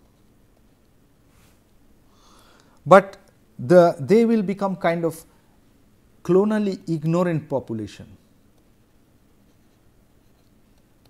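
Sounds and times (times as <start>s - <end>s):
stylus scratching on tablet: 9.0s - 11.0s.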